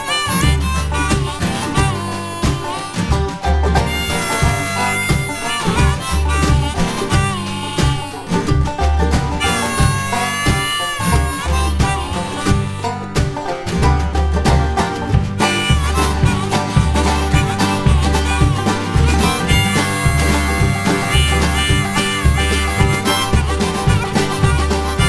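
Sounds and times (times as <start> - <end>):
bluegrass string band playing: 0.0 - 25.0
harmonica lead with bending notes: 0.0 - 25.0
upright bass pulsing: 0.0 - 25.0.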